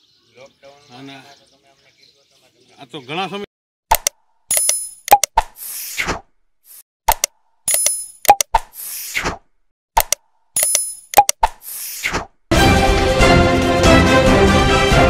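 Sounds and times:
sharp clicks: 0:03.9 - 0:05.6, 0:07.1 - 0:08.8, 0:10.0 - 0:11.6.

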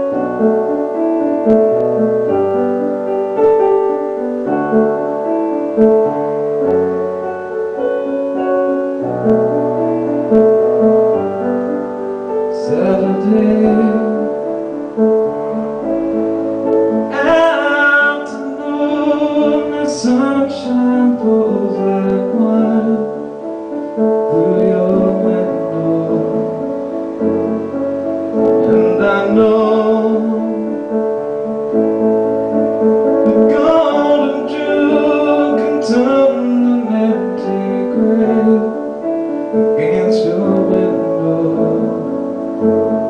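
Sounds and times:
piano chords: 0:00.0 - 0:43.0
man singing: 0:12.4 - 0:14.6, 0:16.8 - 0:27.7, 0:28.3 - 0:31.2, 0:33.2 - 0:43.0.

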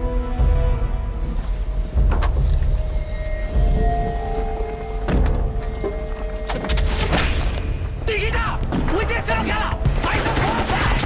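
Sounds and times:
dramatic background music: 0:00.0 - 0:11.0.

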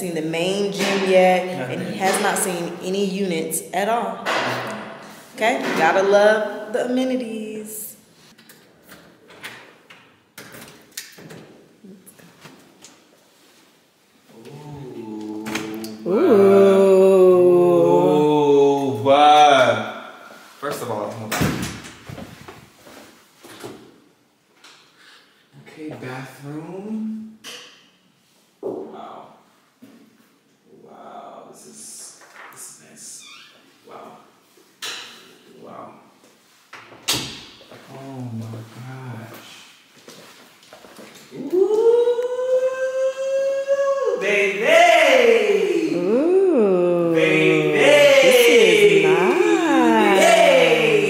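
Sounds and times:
person singing ooh: 0:14.3 - 0:19.0, 0:41.4 - 0:44.2, 0:45.8 - 0:51.0.

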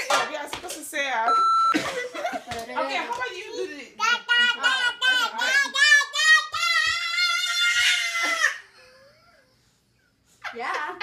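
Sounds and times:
toddler shouting: 0:04.0 - 0:08.6.

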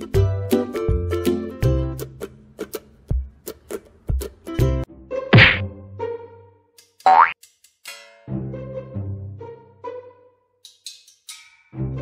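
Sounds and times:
light background music: 0:00.0 - 0:12.0
cartoon thwack: 0:05.3 - 0:05.7.

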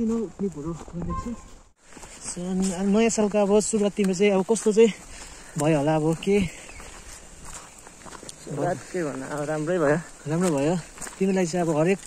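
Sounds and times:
man talking: 0:00.0 - 0:01.5, 0:05.6 - 0:06.6, 0:08.4 - 0:12.0
footsteps on dirt trail: 0:00.0 - 0:12.0.

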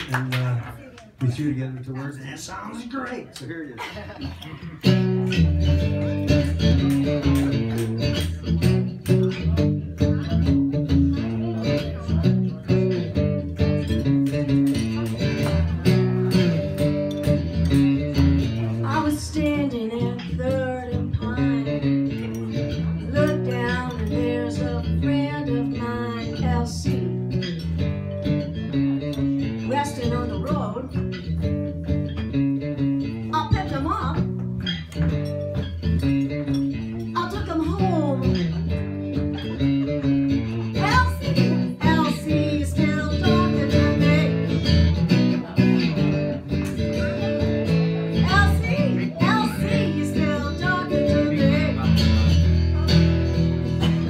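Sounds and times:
acoustic guitar playing: 0:04.0 - 0:54.0
woman singing with vibrato: 0:18.8 - 0:21.9, 0:23.0 - 0:27.4, 0:40.8 - 0:44.6, 0:48.2 - 0:52.0.

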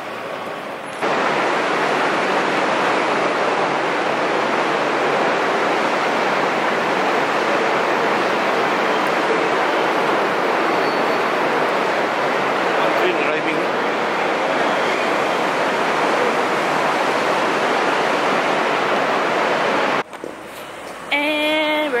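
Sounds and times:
steady rushing noise in hall: 0:00.0 - 0:22.0.

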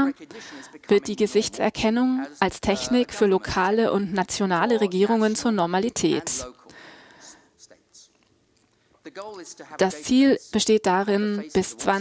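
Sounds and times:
faint breath: 0:00.3 - 0:00.8, 0:06.7 - 0:07.6.

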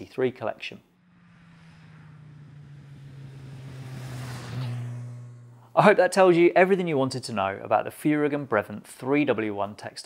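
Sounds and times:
motorcycle engine approaching: 0:00.9 - 0:06.8.

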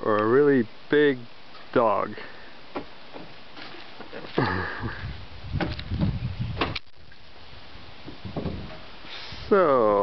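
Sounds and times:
man laughing: 0:04.3 - 0:05.2.

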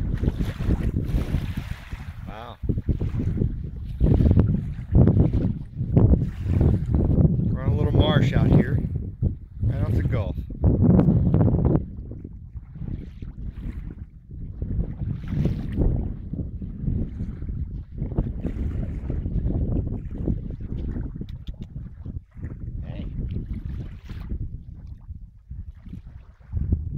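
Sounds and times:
wind buffeting microphone: 0:00.0 - 0:26.9.

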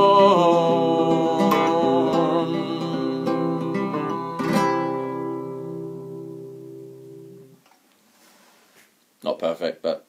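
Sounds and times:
classical guitar chord strum: 0:00.0 - 0:07.6.

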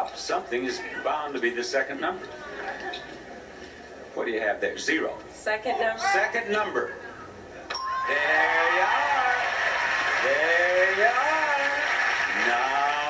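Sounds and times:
game-show bell ding: 0:07.7 - 0:08.4
audience applause and cheering: 0:08.0 - 0:13.0.

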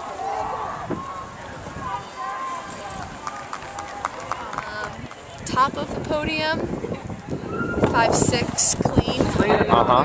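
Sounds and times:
running footsteps on a track: 0:00.0 - 0:08.6.

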